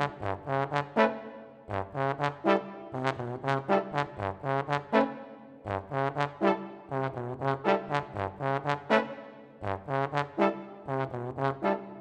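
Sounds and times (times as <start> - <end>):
brass choir repeated chords: 0.0 - 12.0.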